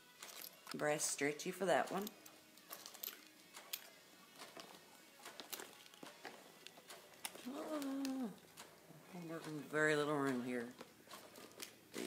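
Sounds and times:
jewelry clicking: 0:01.8 - 0:09.7
packaging rustling: 0:04.3 - 0:08.9, 0:10.6 - 0:12.0
woman saying oh: 0:07.5 - 0:08.4.

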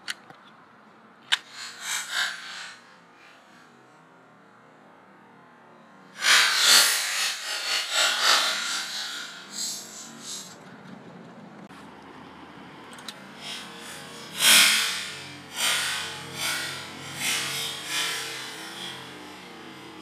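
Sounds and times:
rough scraping and rubbing: 0:06.2 - 0:10.7.

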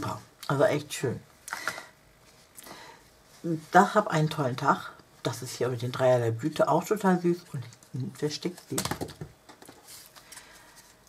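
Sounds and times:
paper rustling: 0:07.8 - 0:11.0.

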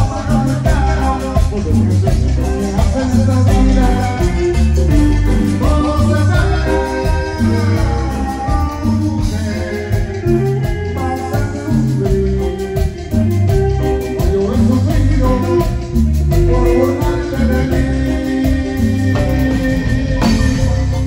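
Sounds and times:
latin dance band playing: 0:00.0 - 0:21.0.

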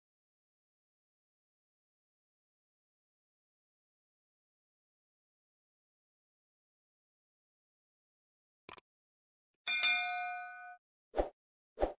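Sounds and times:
bell-like ding: 0:09.7 - 0:10.8.

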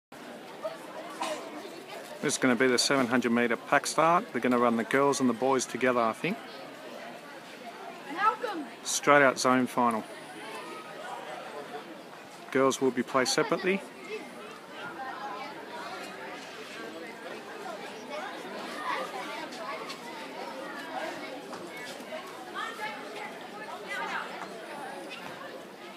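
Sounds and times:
distant voices chattering: 0:00.2 - 0:25.9
steady background noise: 0:00.2 - 0:25.9.

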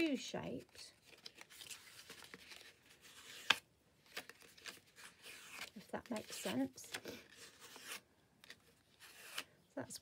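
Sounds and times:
card stock rustling and rubbing: 0:00.6 - 0:09.6.

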